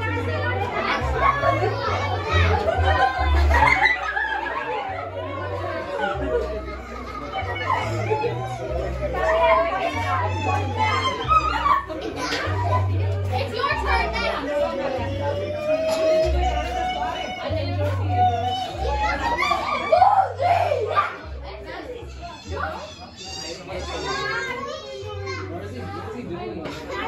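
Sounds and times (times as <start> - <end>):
music with deep bass line: 0.0 - 22.8
children shouting and chattering: 0.0 - 27.0.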